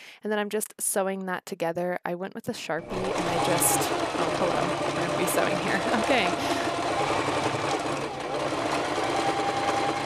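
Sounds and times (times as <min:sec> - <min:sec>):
motor whine: 0:02.8 - 0:10.0
sewing machine stitching: 0:02.8 - 0:10.0.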